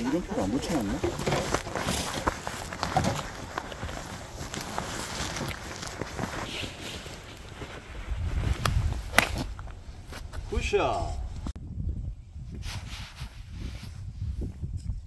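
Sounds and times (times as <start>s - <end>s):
footsteps on stone path: 0.0s - 10.5s
wind rumbling on microphone: 0.0s - 15.0s
golf club striking ball: 9.1s - 9.5s.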